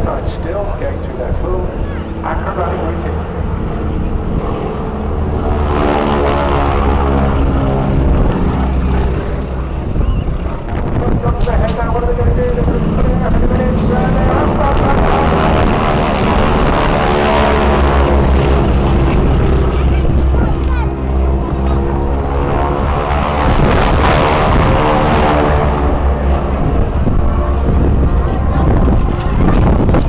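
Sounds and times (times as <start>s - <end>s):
biplane piston engines droning: 0.0s - 30.0s
wind rumble on microphone: 0.0s - 30.0s.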